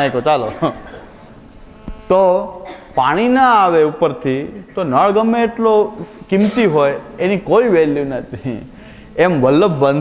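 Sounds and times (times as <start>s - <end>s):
man talking: 0.0s - 1.0s, 2.1s - 10.0s
electrical hum: 0.0s - 10.0s.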